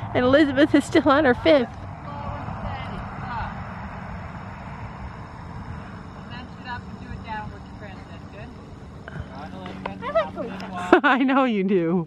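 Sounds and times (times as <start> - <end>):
wind rumble on microphone: 0.0 - 11.7.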